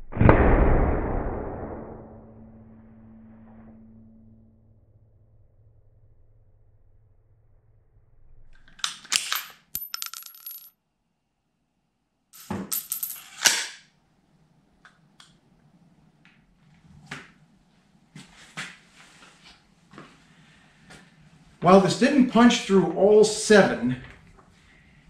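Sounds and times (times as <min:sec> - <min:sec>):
brass casing bouncing on concrete: 0:09.3 - 0:10.7, 0:12.4 - 0:13.5.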